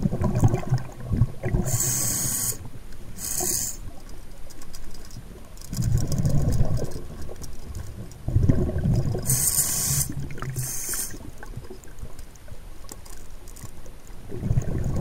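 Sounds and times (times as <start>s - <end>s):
sharp hissing bursts: 1.7s - 2.6s, 3.2s - 3.9s, 9.3s - 11.2s
muffled underwater rumble: 5.2s - 12.8s, 13.9s - 15.0s.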